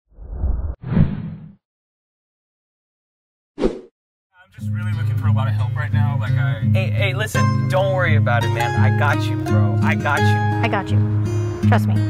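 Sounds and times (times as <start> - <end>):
low whoosh: 0.1 - 1.4.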